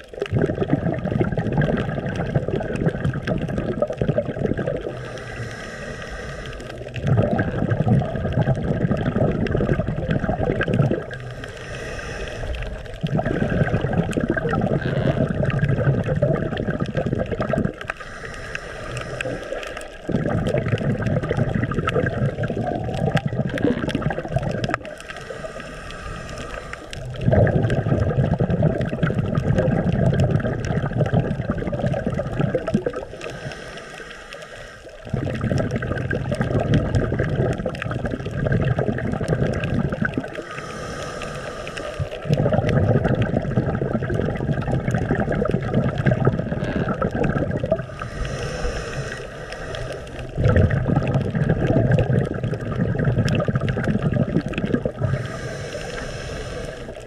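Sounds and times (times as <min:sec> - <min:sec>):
exhaled bubbles rumbling underwater: 0:00.0 - 0:57.0
scuba regulator inhale hiss: 0:04.9 - 0:06.8, 0:11.3 - 0:12.9, 0:17.9 - 0:19.9, 0:25.0 - 0:27.0, 0:33.0 - 0:35.0, 0:40.4 - 0:42.2, 0:47.9 - 0:50.4, 0:55.0 - 0:57.0.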